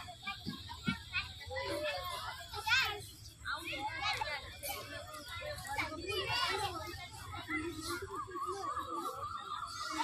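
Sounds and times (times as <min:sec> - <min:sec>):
children playing and calling out: 0:00.0 - 0:10.0.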